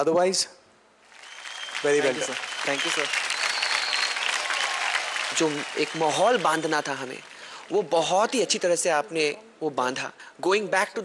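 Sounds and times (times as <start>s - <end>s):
audience applauding: 1.1s - 8.1s.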